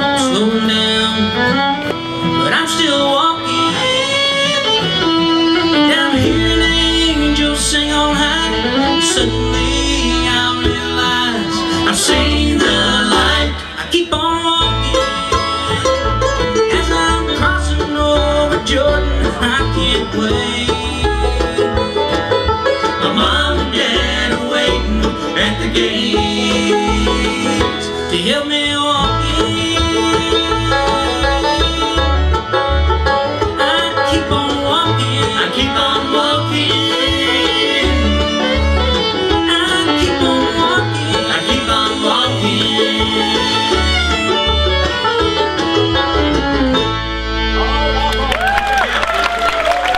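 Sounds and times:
acoustic guitars: 0.0 - 48.2
banjo: 0.0 - 48.8
mandolin: 0.0 - 48.8
fiddle: 0.0 - 49.9
plucked upright bass: 0.0 - 49.9.

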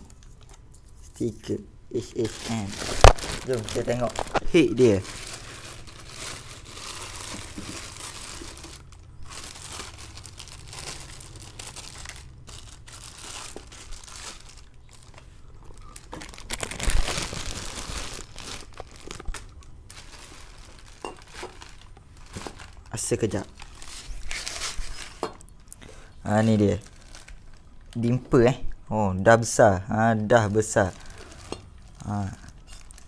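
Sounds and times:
plastic wrapping crinkling: 2.0 - 28.2, 30.3 - 33.0.

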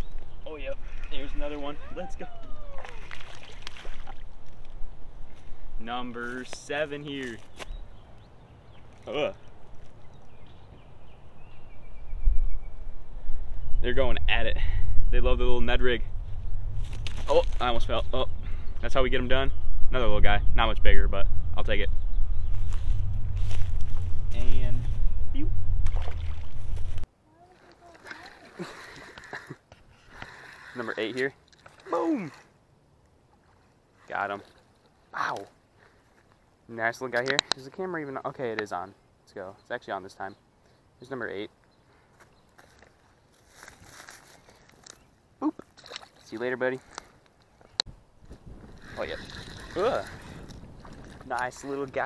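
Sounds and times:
fish splashing into water: 2.6 - 4.3, 25.8 - 26.6
wind rumble on microphone: 9.6 - 27.1, 47.9 - 52.0
footsteps on grass: 22.5 - 25.2, 42.2 - 44.9.

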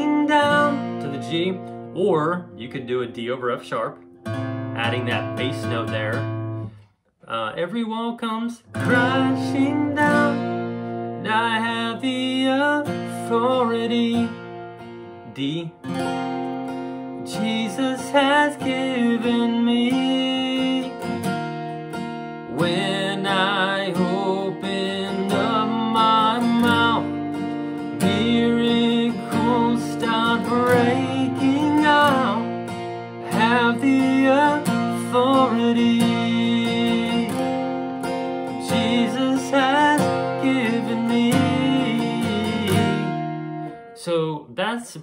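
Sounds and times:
man singing: 0.0 - 3.9, 4.8 - 6.3, 7.2 - 10.6, 11.2 - 14.4, 15.2 - 15.9, 17.2 - 21.2, 22.5 - 43.3, 44.0 - 45.0
acoustic guitar strumming: 0.0 - 44.9.

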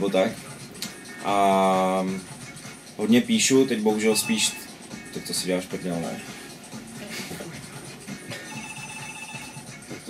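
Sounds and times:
electronic telephone ringer trilling: 8.5 - 9.6.

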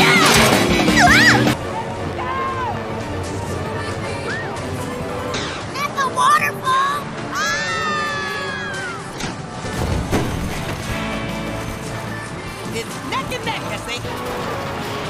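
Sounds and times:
cartoon sound effects: 0.0 - 1.6
cartoon background music: 0.0 - 15.0
character voices: 5.5 - 9.2.

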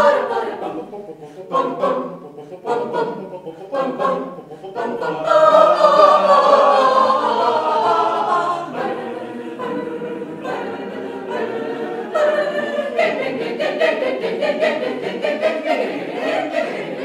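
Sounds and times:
mixed choir singing a cappella: 0.0 - 17.0.

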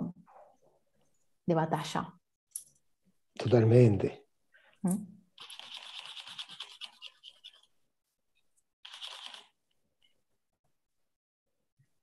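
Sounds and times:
paintbrush scrubbing on canvas: 5.4 - 7.8.

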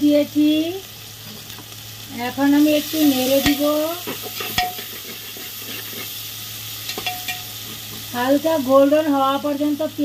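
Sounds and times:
onions sizzling in oil: 0.0 - 10.0
metal spatula stirring: 3.2 - 6.2, 6.8 - 8.0.

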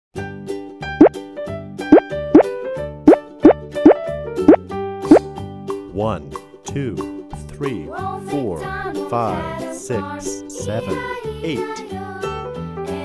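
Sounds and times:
cheerful children's music: 5.1 - 13.0.

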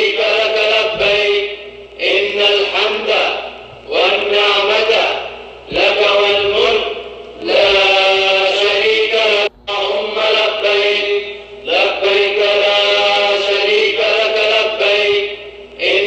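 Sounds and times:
religious chanting: 0.0 - 16.0.

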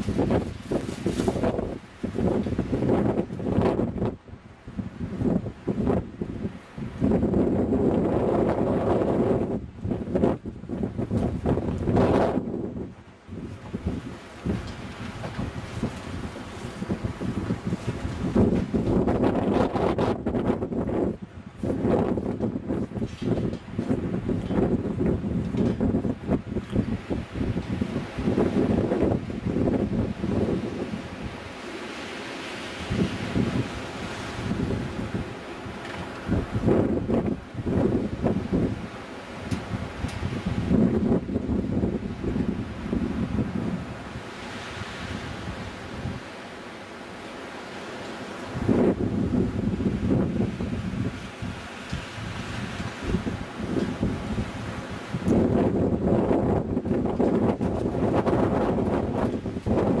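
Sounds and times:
wind gusting on microphone: 0.0 - 60.0.

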